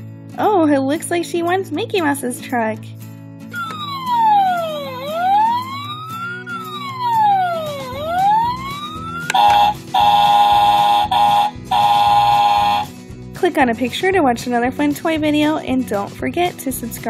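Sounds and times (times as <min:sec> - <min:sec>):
electronic fire bell ringing: 0:03.5 - 0:12.9
toy electronic siren wailing: 0:03.6 - 0:12.9.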